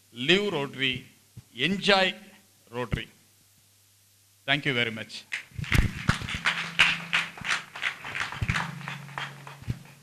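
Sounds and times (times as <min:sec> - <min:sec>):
audience clapping: 0:05.3 - 0:10.0.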